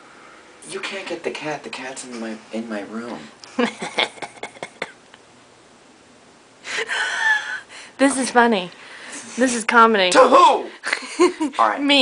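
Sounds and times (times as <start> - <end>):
woman laughing breathily: 6.6 - 7.9.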